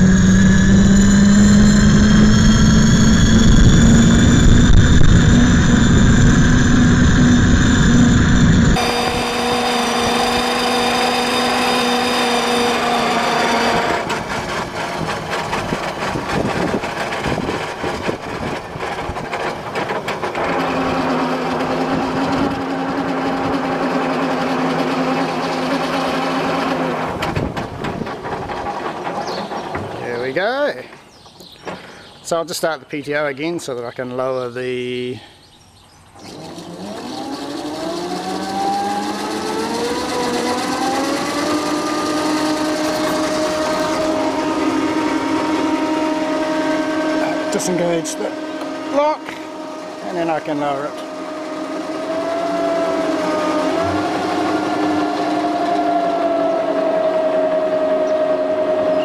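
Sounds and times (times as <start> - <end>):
electric tractor motor whine: 0.0 - 30.6, 36.1 - 59.0
rough driving noise: 0.0 - 32.7, 36.0 - 59.0.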